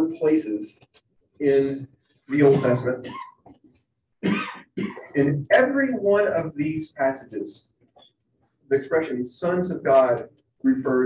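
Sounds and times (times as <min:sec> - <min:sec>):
man lecturing: 0:00.0 - 0:03.1, 0:05.0 - 0:07.8, 0:08.7 - 0:11.0
man coughing: 0:02.3 - 0:03.3, 0:04.2 - 0:05.2.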